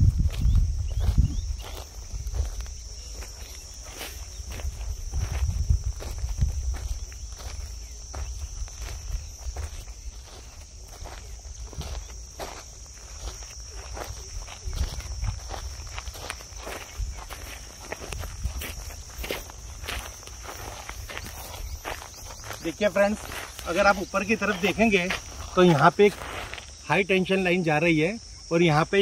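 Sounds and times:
footsteps walking: 0.0s - 26.8s
high drone of insects: 0.0s - 29.0s.

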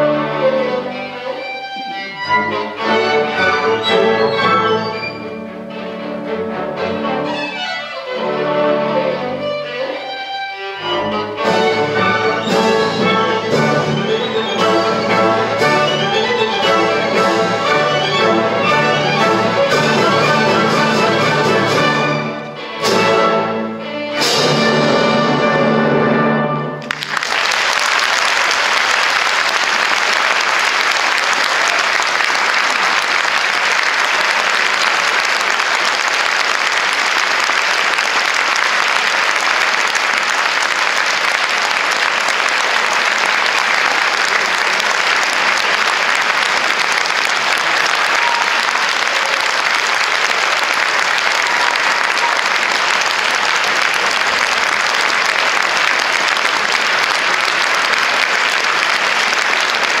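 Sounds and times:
audience applauding: 10.9s - 22.4s, 26.8s - 60.0s.

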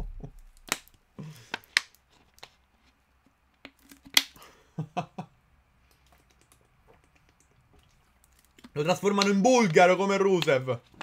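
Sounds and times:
plastic bottle clicks and crackles: 0.2s - 2.5s, 3.6s - 4.4s, 8.2s - 11.0s.

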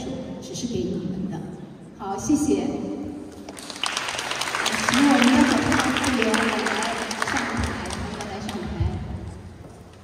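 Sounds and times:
audience applauding: 3.5s - 8.6s.

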